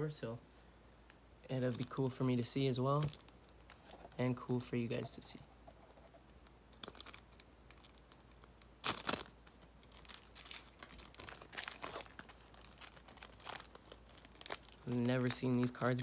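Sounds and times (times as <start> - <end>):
foil pack crinkling and tearing: 6.7 - 16.0.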